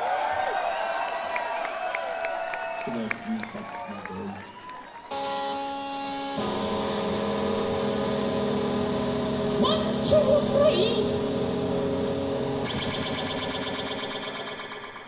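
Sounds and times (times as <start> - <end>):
loose wavering guitar notes: 5.1 - 15.0
rock band sustained chords: 5.1 - 15.0.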